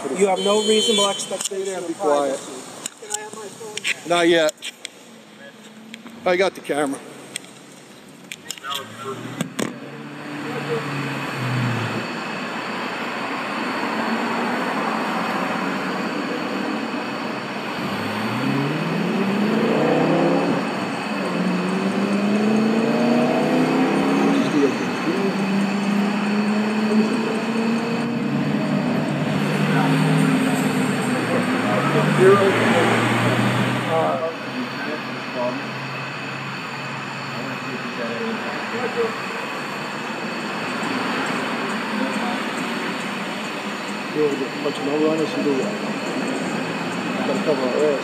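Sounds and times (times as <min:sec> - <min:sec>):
motor vehicle engines: 0:00.0 - 0:48.0
road noise: 0:00.0 - 0:48.0.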